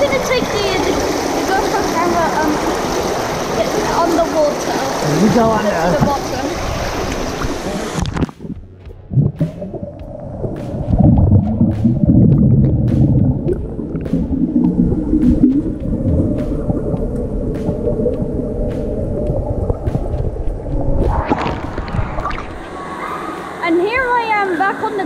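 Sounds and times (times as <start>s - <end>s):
water splashing at surface: 0.0s - 22.8s
muffled underwater rumble and gurgling: 0.0s - 23.1s
faint underwater clicks: 7.0s - 8.6s, 9.2s - 22.7s.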